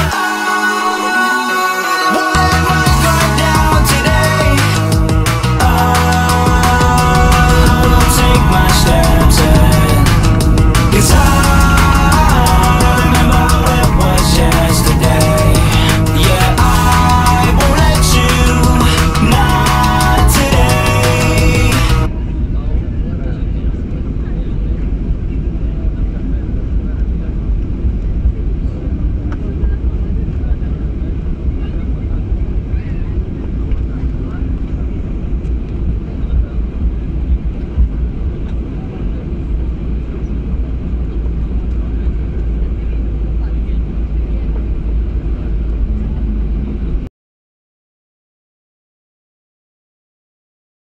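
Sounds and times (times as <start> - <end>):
music playing: 0.0 - 22.5
aircraft cabin rumble: 2.4 - 47.1.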